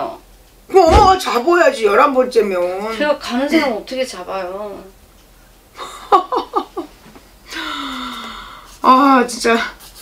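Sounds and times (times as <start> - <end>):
woman sighing: 7.5 - 8.6.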